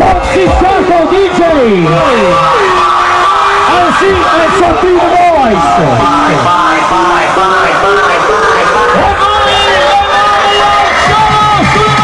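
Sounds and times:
club dance music: 0:00.0 - 0:12.0.

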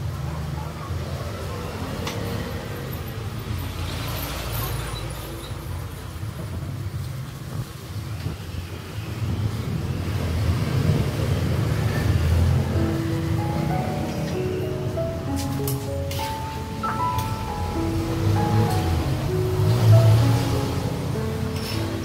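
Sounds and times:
road traffic rumble: 0:00.0 - 0:22.0
vehicle passing: 0:09.2 - 0:22.0.

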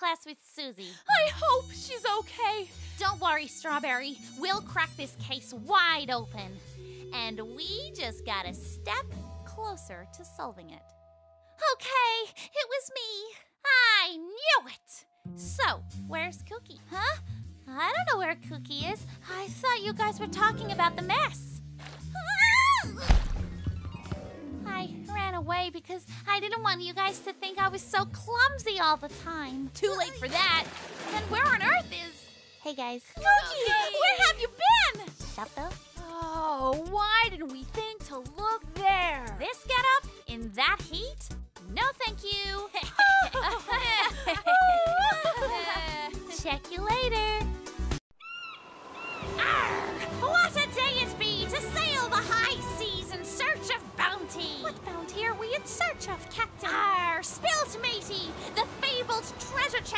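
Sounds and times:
background music: 0:00.8 - 0:48.0, 0:49.0 - 0:59.9
heavy thunk: 0:23.0 - 0:24.3
bird cries: 0:48.2 - 0:49.6
cartoon wobbling cry: 0:48.2 - 0:50.0.

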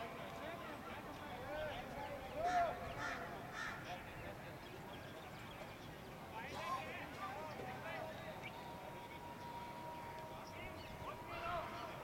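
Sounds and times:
bird harsh calls: 0:02.5 - 0:03.9.

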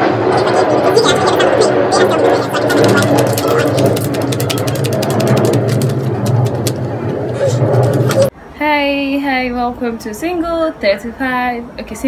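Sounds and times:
rapid irregular clicking clatter: 0:00.5 - 0:08.3.

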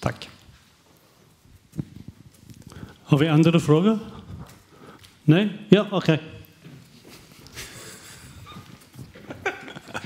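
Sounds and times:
man chuckling: 0:07.6 - 0:10.0.

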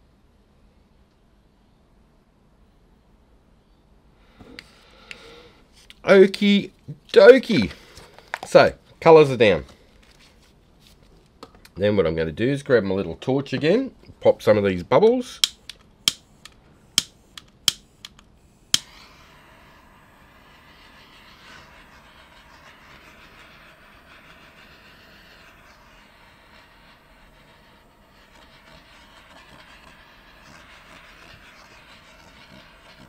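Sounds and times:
torch igniter clicks: 0:15.4 - 0:19.1
torch flame hissing: 0:15.4 - 0:33.0.

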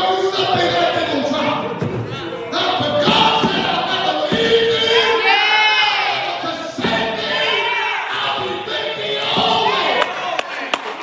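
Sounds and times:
preacher shouting and half-singing: 0:00.0 - 0:11.0.

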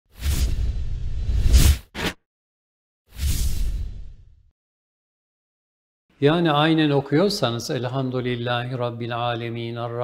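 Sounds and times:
short swish: 0:00.1 - 0:02.2, 0:03.1 - 0:04.2.

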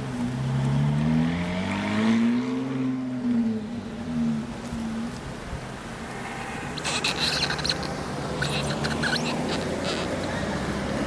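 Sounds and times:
car engine accelerating: 0:00.0 - 0:05.1.

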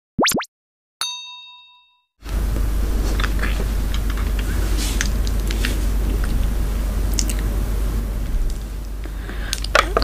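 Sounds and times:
chime ringing: 0:01.0 - 0:02.1
steady low hum: 0:02.2 - 0:10.0.

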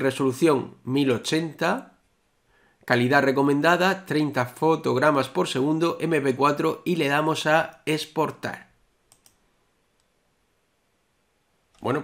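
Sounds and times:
faint computer mouse click: 0:09.1 - 0:09.4.

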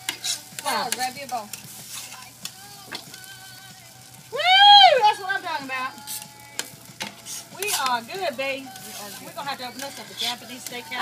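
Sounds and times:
person whooping: 0:04.3 - 0:05.2.

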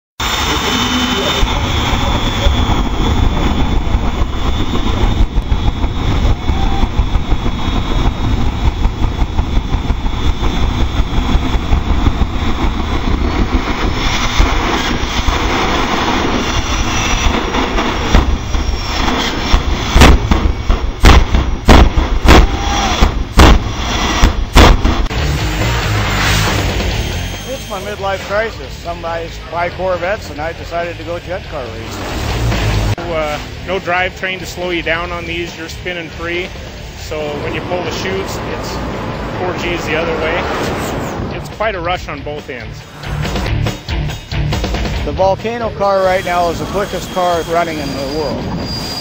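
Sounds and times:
sharp afterburner blasts: 0:00.2 - 0:29.4, 0:31.5 - 0:45.2
jet engines running: 0:00.2 - 0:49.0.

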